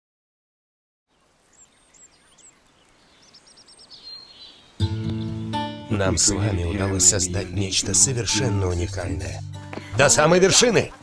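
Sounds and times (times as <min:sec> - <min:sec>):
birds chirping: 0:01.1 - 0:11.0
faint forest ambience: 0:01.1 - 0:11.0.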